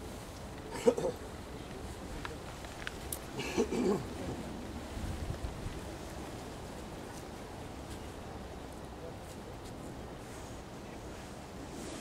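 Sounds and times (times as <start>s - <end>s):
wind rumble on microphone: 4.0s - 8.5s.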